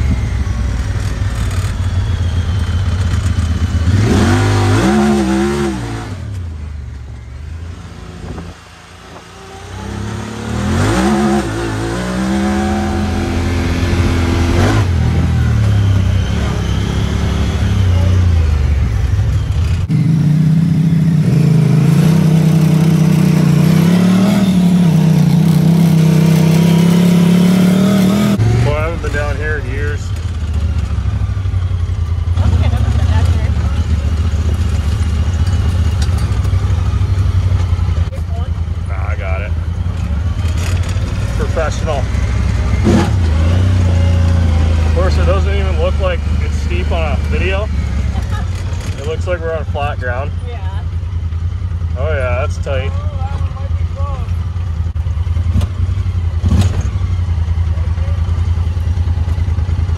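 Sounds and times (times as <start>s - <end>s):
off-road vehicle engine revving: 0.0s - 59.9s.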